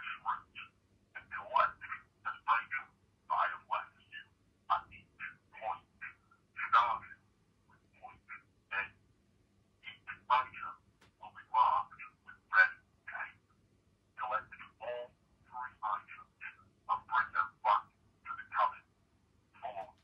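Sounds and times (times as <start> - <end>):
person speaking over telephone: 0.0 - 9.0, 9.8 - 13.4, 14.2 - 18.9, 19.6 - 20.0
faint steady hum: 0.0 - 20.0.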